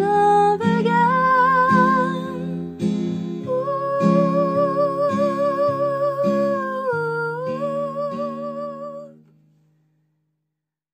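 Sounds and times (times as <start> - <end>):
acoustic guitar chords: 0.0 - 9.8
woman singing long note: 3.5 - 9.1.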